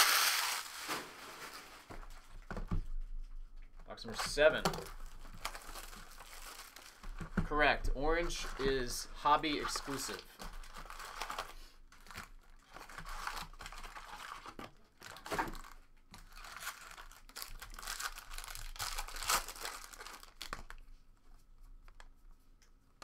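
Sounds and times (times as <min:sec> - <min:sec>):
foil packs crinkling: 0:00.0 - 0:02.4, 0:04.1 - 0:20.8.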